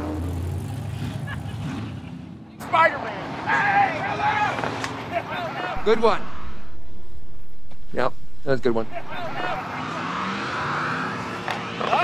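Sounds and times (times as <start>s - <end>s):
movie dialogue: 5.7s - 9.8s
car engine rumbling: 5.8s - 11.4s.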